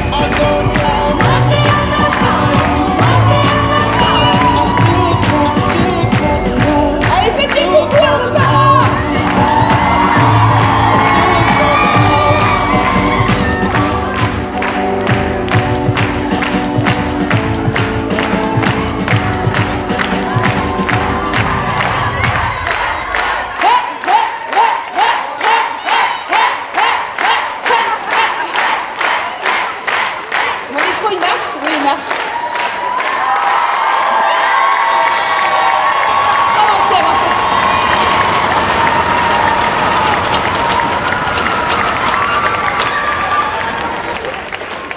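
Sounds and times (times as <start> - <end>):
music with heavy bass: 0.0 - 22.6
audience clapping in rhythm: 0.0 - 44.9
crowd cheering and shouting: 0.0 - 44.9.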